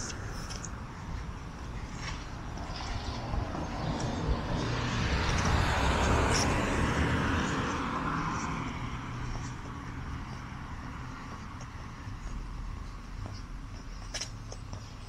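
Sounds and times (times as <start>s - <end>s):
vehicle passing by: 1.8s - 12.9s.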